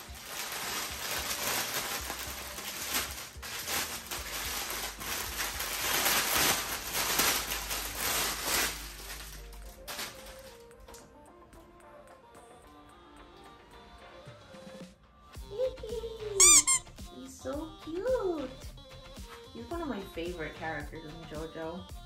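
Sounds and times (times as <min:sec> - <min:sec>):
plastic bag crinkling: 0:00.0 - 0:11.0, 0:16.4 - 0:16.8
soft background music: 0:00.0 - 0:22.0.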